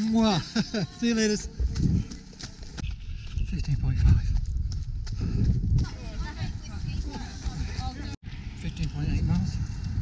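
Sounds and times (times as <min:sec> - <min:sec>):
runner's footsteps: 0:00.6 - 0:08.1
wind buffeting microphone: 0:01.3 - 0:10.0.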